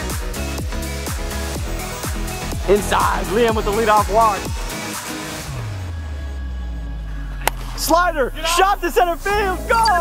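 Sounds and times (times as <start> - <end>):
low background music: 0.0 - 10.0.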